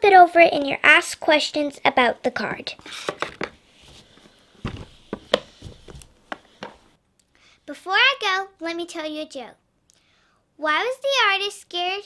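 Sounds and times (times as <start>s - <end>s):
cardboard boxes tapping on table: 4.6s - 6.8s.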